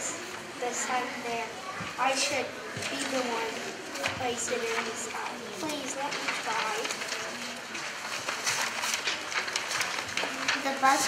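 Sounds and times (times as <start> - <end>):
faint murmur of voices: 0.0 - 11.0
paper rustling and crinkling: 0.1 - 11.0.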